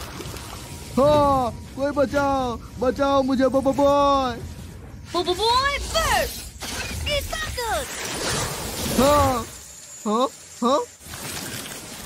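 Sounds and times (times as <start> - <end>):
ice cracking sound effect: 11.0 - 12.0.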